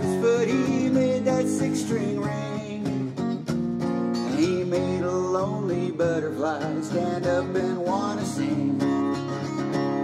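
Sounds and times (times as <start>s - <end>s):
man singing: 0.0s - 3.2s, 4.2s - 9.4s
acoustic guitar strumming: 0.0s - 10.0s.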